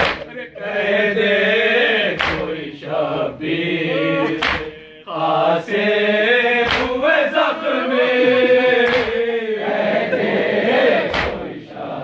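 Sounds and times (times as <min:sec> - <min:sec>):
hands slapping chests: 0:00.0 - 0:00.3, 0:02.1 - 0:02.6, 0:04.2 - 0:04.8, 0:06.6 - 0:07.0, 0:08.8 - 0:09.2, 0:11.0 - 0:11.6
men chanting a lament: 0:00.0 - 0:12.0.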